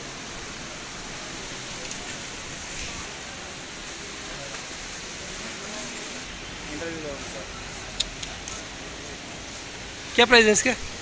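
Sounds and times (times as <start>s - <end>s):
distant voices and bustle: 0.0s - 11.0s.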